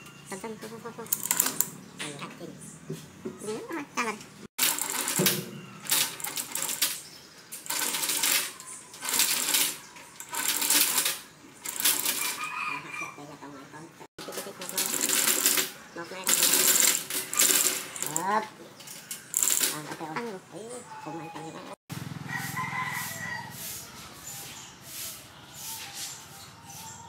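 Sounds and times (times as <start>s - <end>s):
metallic clinking and rattling: 1.0s - 1.8s, 4.6s - 12.4s, 14.2s - 20.1s.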